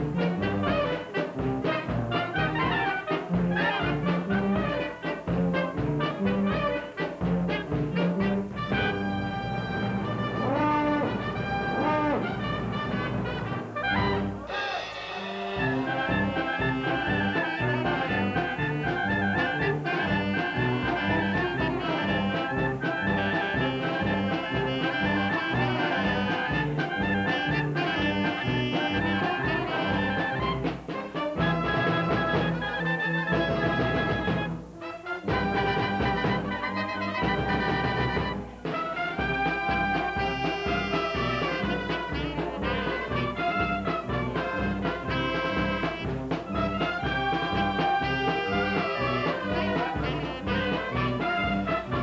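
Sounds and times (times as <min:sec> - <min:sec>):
brass band playing paso doble: 0:00.0 - 0:52.0
swooping sliding horn notes: 0:00.0 - 0:52.0.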